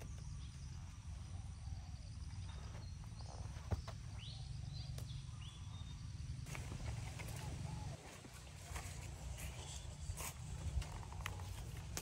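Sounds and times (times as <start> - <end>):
bird chirps: 0.0 - 8.0
wind rumble on microphone: 6.5 - 12.0.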